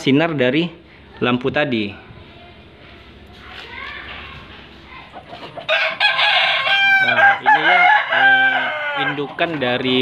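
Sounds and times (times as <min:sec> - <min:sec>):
rooster crowing: 0:05.6 - 0:09.5.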